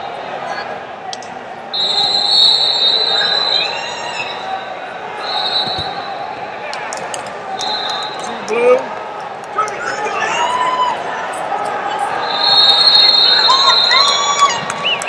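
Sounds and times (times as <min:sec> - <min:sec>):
echoing shouts from crowd: 0:00.0 - 0:15.0
high whistle blasts: 0:01.7 - 0:06.3, 0:07.6 - 0:08.3, 0:12.1 - 0:15.0.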